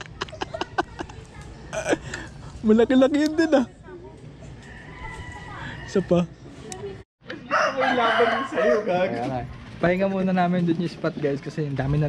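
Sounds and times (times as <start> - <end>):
rooster crowing: 4.6 - 6.3, 7.4 - 9.2.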